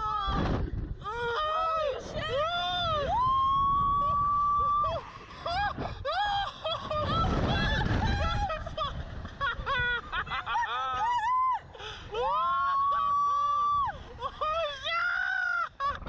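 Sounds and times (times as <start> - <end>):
man and woman laughing: 6.1 - 8.2, 8.9 - 11.5
man and woman screaming: 10.5 - 16.0.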